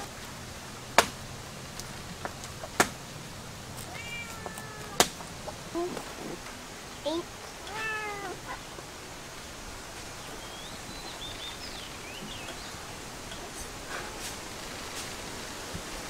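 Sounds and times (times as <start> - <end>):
kitten meowing: 3.8 - 5.1, 7.1 - 8.6.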